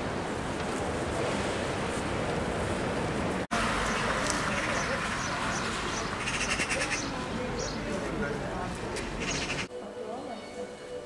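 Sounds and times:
bird chirping and chattering: 3.9s - 7.9s, 9.2s - 9.7s.

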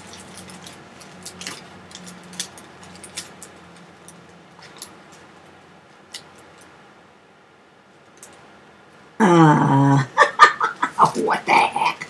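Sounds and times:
plastic bags clicking: 0.0s - 5.3s
woman's vocal sounds: 9.2s - 12.0s.

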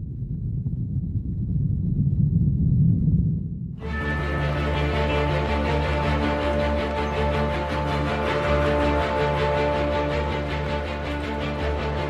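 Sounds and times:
deep low rumble: 0.0s - 7.0s.

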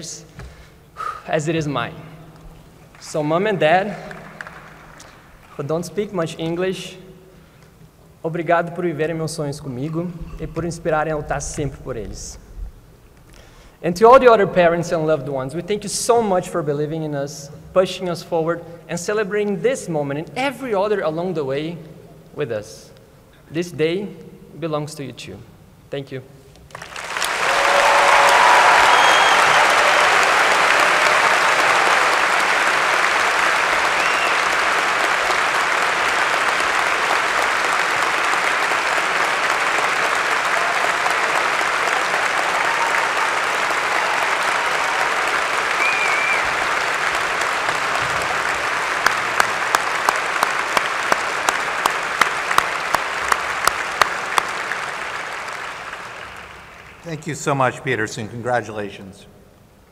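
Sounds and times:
large audience applauding: 2.6s - 5.6s, 26.7s - 57.3s
sharp evenly spaced claps: 3.8s - 5.6s, 26.7s - 57.1s.

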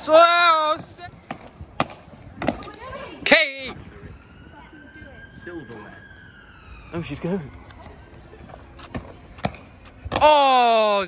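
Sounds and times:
feet landing on brick wall: 8.4s - 10.6s.

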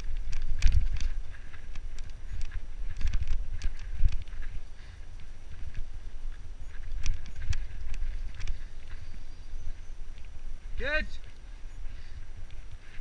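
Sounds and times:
bike chain and frame rattling: 0.0s - 10.4s
wind on microphone: 0.0s - 13.0s.

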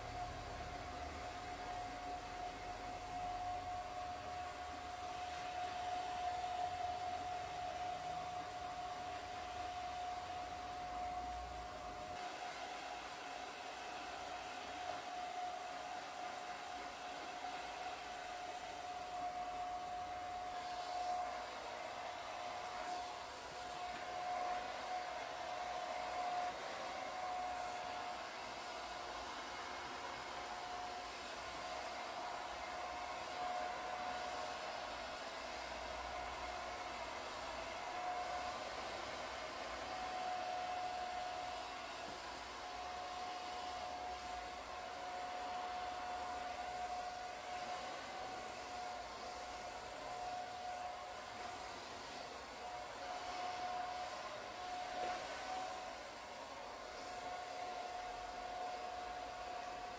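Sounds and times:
hair dryer running: 0.0s - 59.9s.

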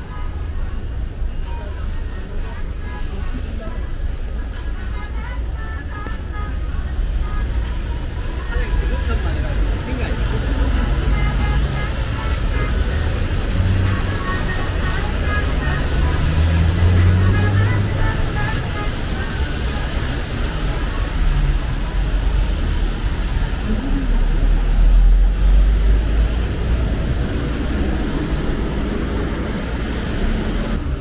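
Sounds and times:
people talking: 0.0s - 30.8s
low rumble of traffic: 0.0s - 31.0s
music from shops: 0.0s - 31.0s.

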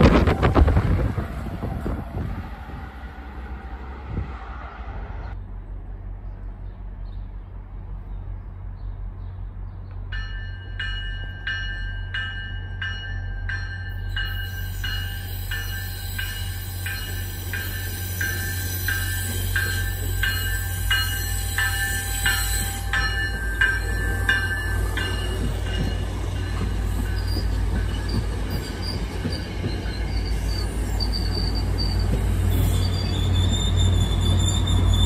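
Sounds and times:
train rumble: 0.0s - 35.0s
train bell ringing: 10.1s - 35.0s
high-pitched wheel squeal: 26.8s - 35.0s.

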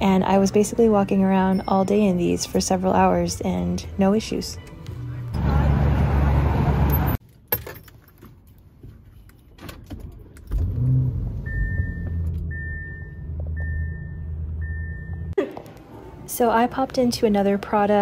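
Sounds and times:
loud street noise: 3.9s - 7.2s
car engine starting and idling: 10.1s - 15.4s
dashboard chime beeping: 11.5s - 15.3s.

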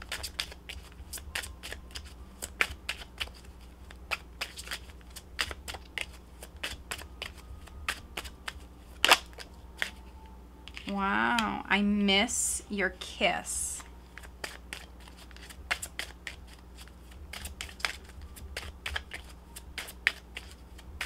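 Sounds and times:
cards being shuffled: 0.0s - 10.0s, 14.1s - 21.0s.

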